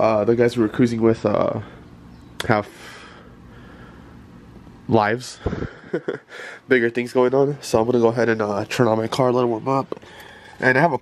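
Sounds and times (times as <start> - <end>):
man talking: 0.0 - 1.8, 4.9 - 5.5, 6.7 - 10.0, 10.6 - 11.0
low steady hum: 0.0 - 11.0.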